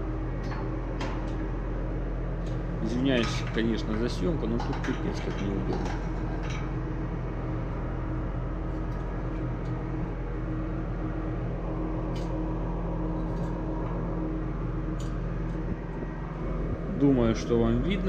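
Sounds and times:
engine room machinery hum: 0.0 - 18.0.

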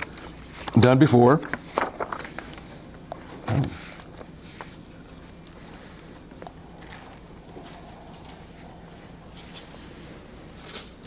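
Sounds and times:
paper rustling: 0.5 - 7.3.

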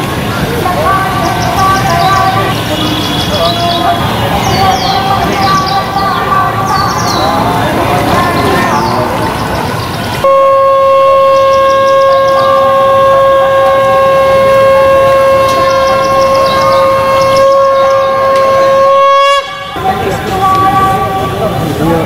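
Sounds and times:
birds chirping: 0.0 - 22.0
voices: 0.0 - 22.0
conch shell blown: 10.2 - 21.7.

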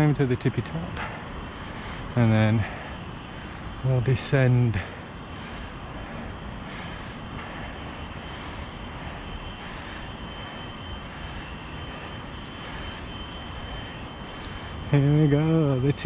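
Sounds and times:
steady rushing noise: 0.0 - 16.0.

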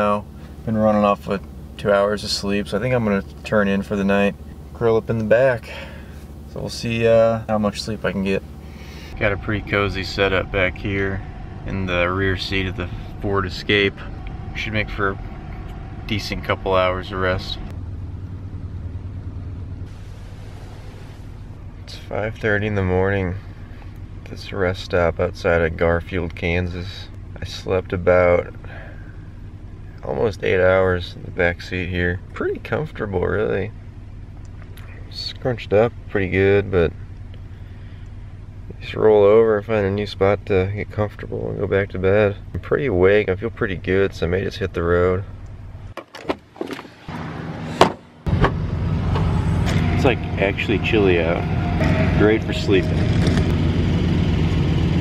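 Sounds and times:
low engine drone: 0.0 - 46.0, 46.7 - 55.0
steady low rumble: 0.0 - 46.0, 47.0 - 55.0.

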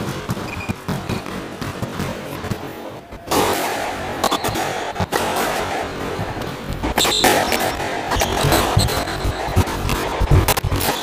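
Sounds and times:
steady background noise: 0.0 - 11.0
shoes squeaking on wooden floor: 0.3 - 1.3, 6.7 - 9.8.

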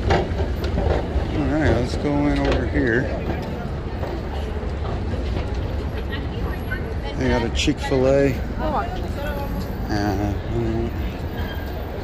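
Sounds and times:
faint chatter of passers-by: 0.0 - 12.0.

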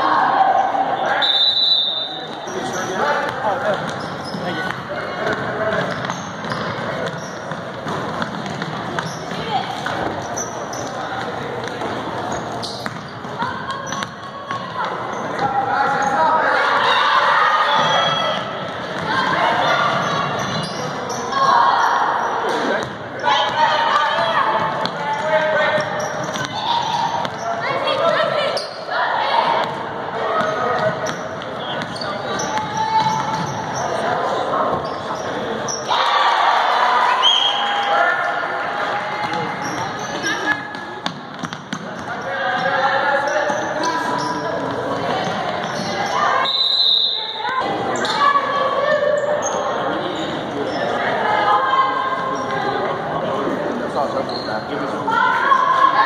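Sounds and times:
people calling out and chattering: 0.0 - 56.0
basketball bouncing on court: 3.2 - 10.3, 11.2 - 16.0, 17.8 - 20.7, 24.2 - 28.1, 29.6 - 33.8, 39.2 - 42.7.

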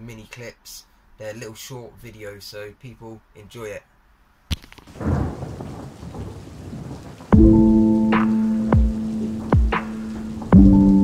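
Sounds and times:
rain: 4.5 - 11.0
thunder rumbling: 4.9 - 11.0
deep bass hit: 7.4 - 11.0
music with loud held chord: 7.4 - 11.0.

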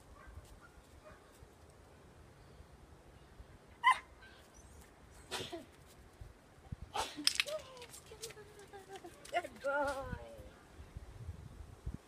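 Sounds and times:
dog barking: 0.2 - 1.3.

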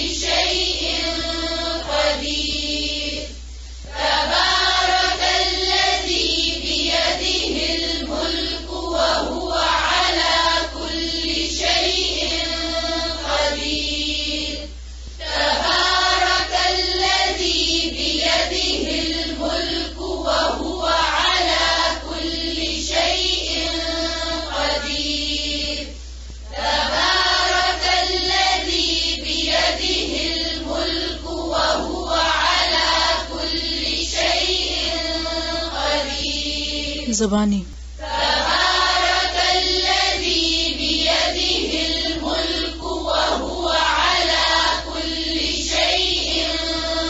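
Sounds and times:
steady low hum: 0.0 - 47.0
voices chanting recitation: 0.0 - 47.0
woman chanting melodically: 36.0 - 37.8.

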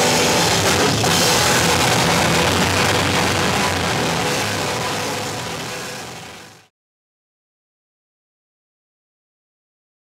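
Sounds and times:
bass guitar: 0.0 - 6.7
loud distorted guitar: 0.0 - 6.7.

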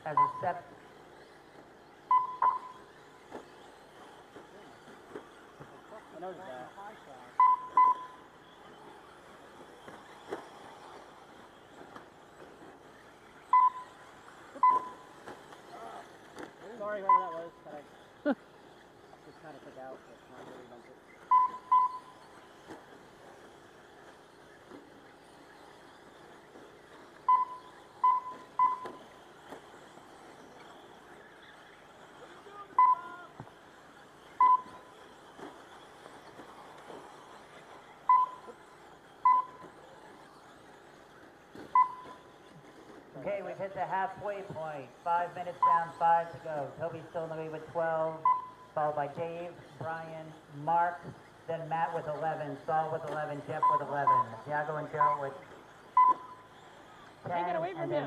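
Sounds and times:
short electronic beeps: 0.0 - 0.7, 2.0 - 3.0, 7.4 - 8.3, 13.4 - 14.0, 14.6 - 15.2, 17.0 - 17.7, 21.3 - 22.3, 27.2 - 29.2, 32.7 - 33.2, 34.3 - 35.0, 38.0 - 38.6, 39.2 - 39.7, 41.7 - 42.3, 45.6 - 46.2, 48.2 - 48.8, 53.6 - 54.4, 55.0 - 56.5.

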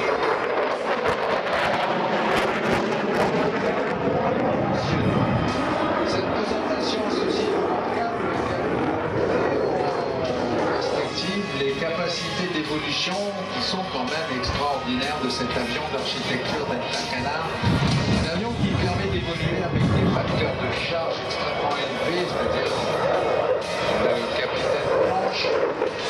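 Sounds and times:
jet engine roar: 0.0 - 26.0
public-address music: 4.7 - 26.0.

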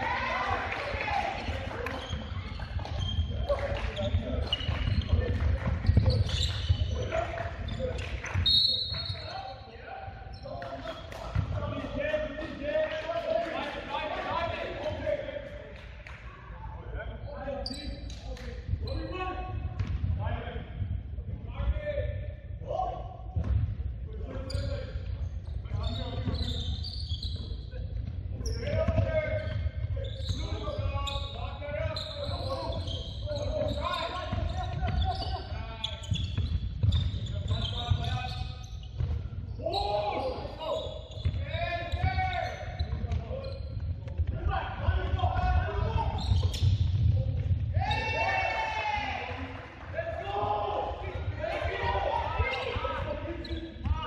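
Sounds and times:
people shouting: 0.0 - 1.3, 47.8 - 49.3
basketball bouncing on hardwood: 19.8 - 20.2.

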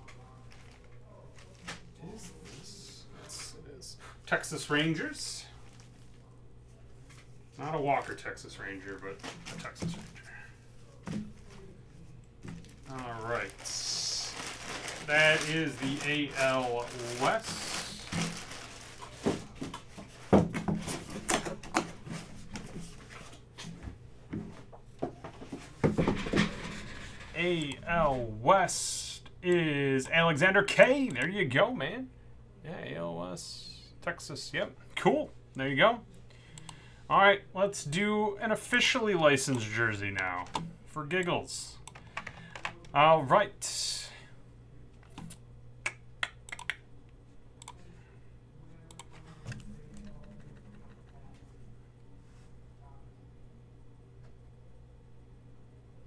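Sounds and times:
keyboard and mouse clicks: 45.1 - 46.8.

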